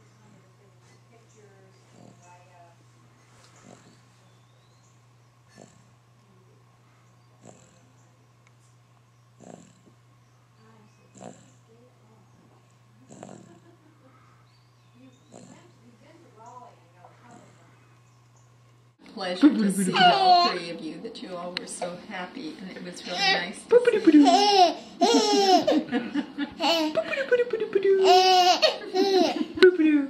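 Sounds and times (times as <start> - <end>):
steady low hum: 0.0 - 30.0
baby snoring breaths: 3.5 - 4.0, 9.4 - 10.0, 13.0 - 13.5.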